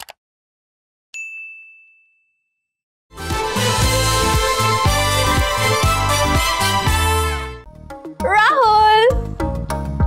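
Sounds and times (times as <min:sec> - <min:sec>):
notification bell ding: 0:01.2 - 0:02.7.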